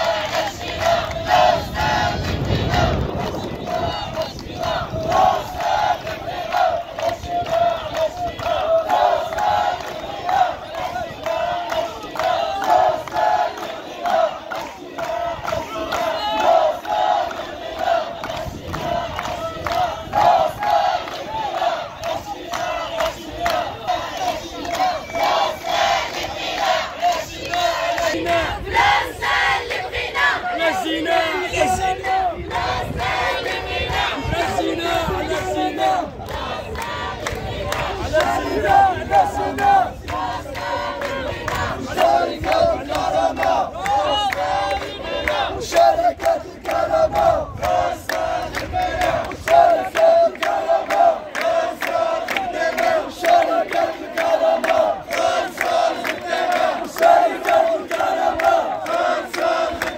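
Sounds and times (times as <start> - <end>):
crowd chanting slogans: 0.0 - 59.9.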